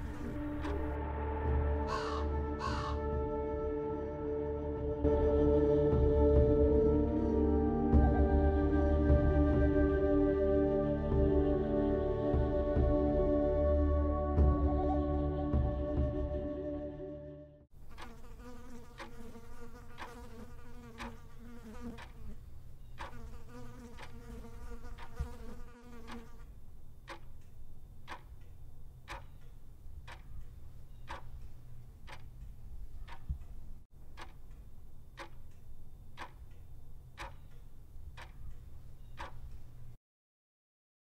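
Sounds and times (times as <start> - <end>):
regular ticking: 0.0 - 1.0, 17.8 - 40.0.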